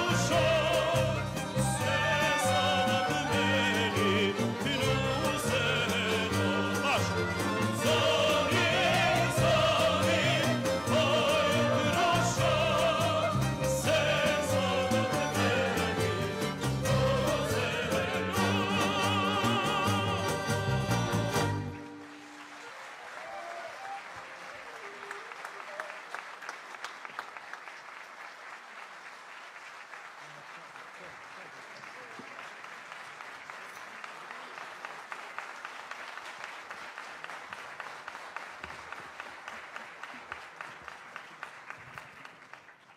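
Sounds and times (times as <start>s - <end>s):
audience applauding: 0.0s - 42.9s.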